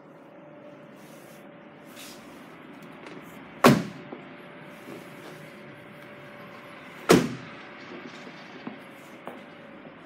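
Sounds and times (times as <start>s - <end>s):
car door thud: 3.6s - 4.0s, 7.1s - 7.4s.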